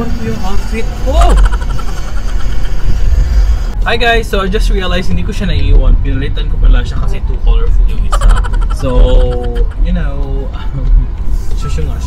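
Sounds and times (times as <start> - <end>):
car engine and road noise: 0.0 - 12.0
man talking: 3.8 - 12.0.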